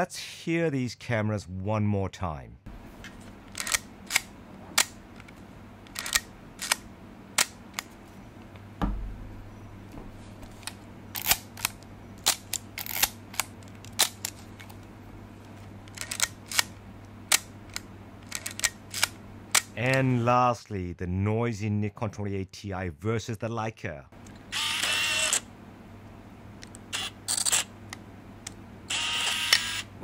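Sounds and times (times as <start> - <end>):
handling thump: 8.8 - 10.2
camera shutter clicks: 24.6 - 25.4, 26.9 - 27.7, 28.9 - 29.8.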